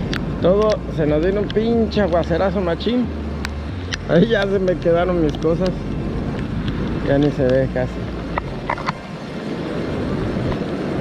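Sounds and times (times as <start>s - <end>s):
storm wind buffeting microphone: 3.7s - 11.0s.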